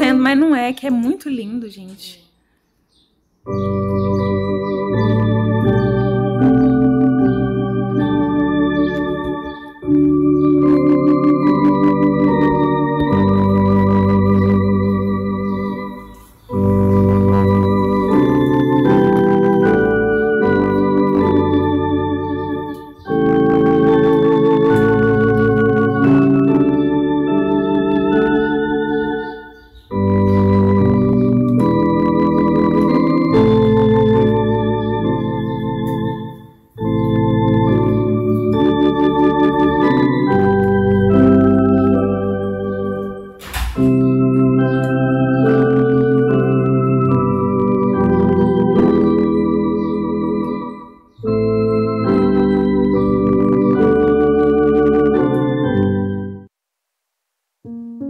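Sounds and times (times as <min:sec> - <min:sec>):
electronic organ chords: 0:02.7 - 0:56.6, 0:57.6 - 0:58.0.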